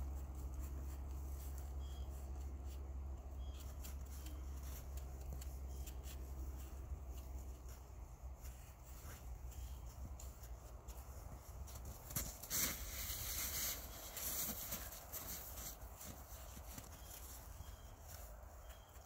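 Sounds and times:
hands patting snow: 0:05.8 - 0:19.0
snow crunching underfoot: 0:07.4 - 0:19.0.

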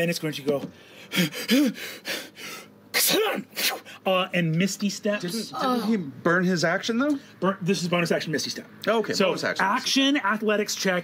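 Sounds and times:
man breathing heavily: 0:00.8 - 0:02.8.

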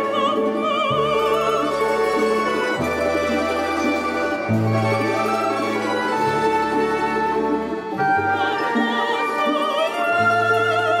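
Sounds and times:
folk string orchestra playing: 0:00.0 - 0:11.0.

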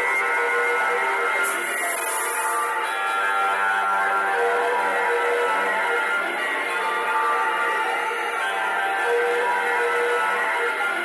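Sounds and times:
live instrumental music: 0:01.4 - 0:04.5.

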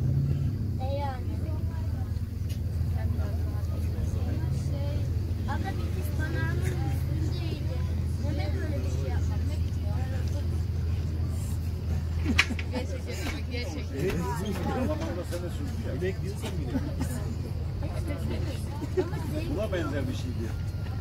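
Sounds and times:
boat engine droning: 0:00.0 - 0:21.0
people talking faintly: 0:00.0 - 0:21.0.

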